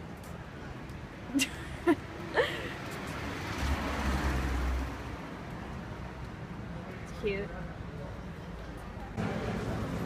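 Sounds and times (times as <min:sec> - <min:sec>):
street noise: 0:00.0 - 0:10.0
vehicle passing: 0:02.8 - 0:06.2.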